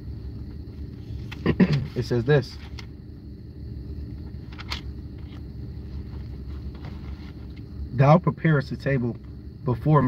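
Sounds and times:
car cabin hum and rumble: 0.0 - 10.0.

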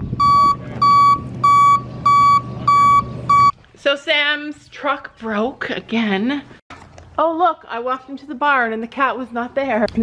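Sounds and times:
truck engine rumble: 0.0 - 3.8
truck backup alarm beeping: 0.2 - 3.5.

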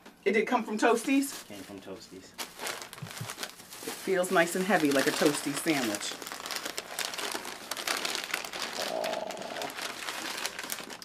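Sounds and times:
paper wrapping crinkling: 0.9 - 11.0.

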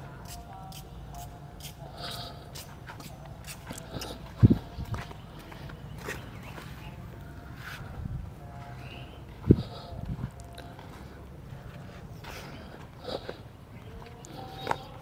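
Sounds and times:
faint distant voices: 0.0 - 15.0
steady low rumble: 3.8 - 14.1.

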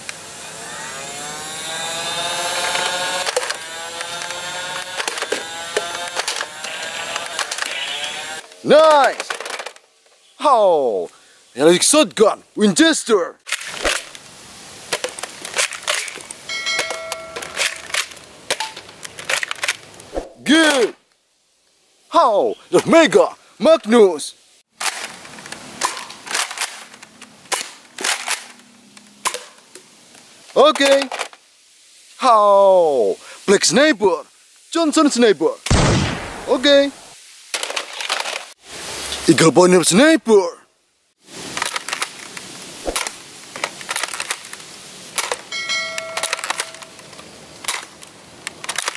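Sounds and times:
plastic toy guns handled: 8.5 - 9.8, 14.9 - 16.4, 17.4 - 20.0, 24.8 - 28.6, 30.7 - 31.4, 37.6 - 38.5, 41.4 - 45.5, 46.2 - 48.9
short ringing clang: 16.5 - 17.6, 45.5 - 46.9.

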